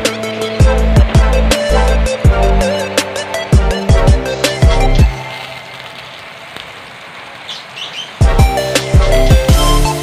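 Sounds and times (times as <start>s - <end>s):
background music with beat: 0.0s - 5.5s, 8.2s - 10.0s
butter sizzling in frying pan: 0.0s - 10.0s
faint bird chirps: 7.4s - 8.2s.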